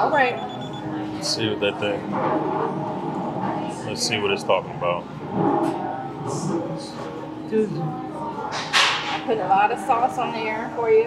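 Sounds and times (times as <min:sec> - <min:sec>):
indistinct low voices: 0:00.6 - 0:10.9.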